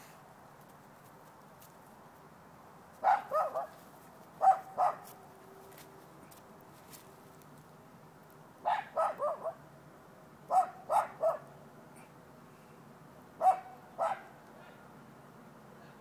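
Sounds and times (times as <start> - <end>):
dog barking: 3.0 - 3.8, 4.4 - 5.1, 8.6 - 9.6, 10.5 - 11.5, 13.4 - 14.8.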